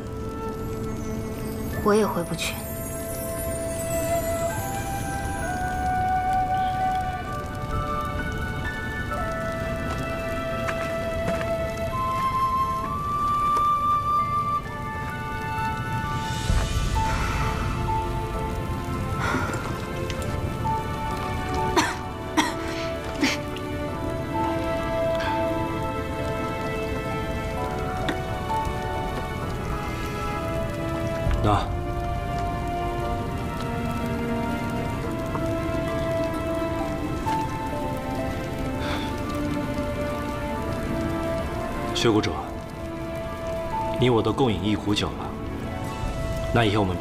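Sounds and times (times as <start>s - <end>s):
campfire crackling and popping: 0.0s - 47.0s
soft background music: 0.0s - 47.0s.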